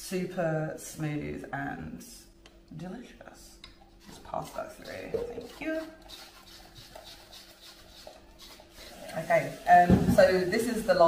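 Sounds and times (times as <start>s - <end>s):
spoon scraping mesh sieve: 4.0s - 10.6s.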